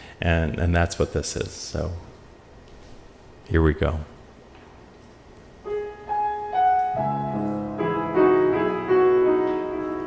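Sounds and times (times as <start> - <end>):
piano melody and chords: 5.6 - 10.0.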